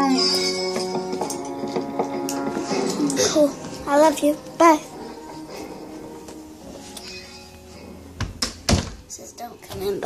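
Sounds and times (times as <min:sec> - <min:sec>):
cartoon music from television: 0:00.0 - 0:08.7.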